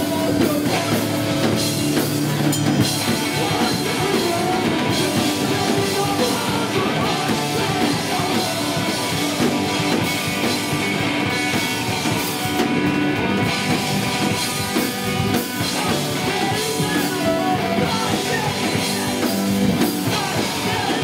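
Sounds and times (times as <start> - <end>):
person singing: 0.0 - 1.3, 3.0 - 9.6, 15.4 - 21.0
drum kit: 0.0 - 21.0
electric bass: 0.0 - 21.0
electric guitars: 0.0 - 21.0.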